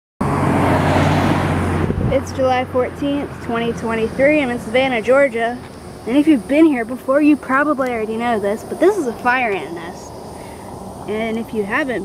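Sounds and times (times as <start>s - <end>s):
car passing close by: 0.2s - 6.0s.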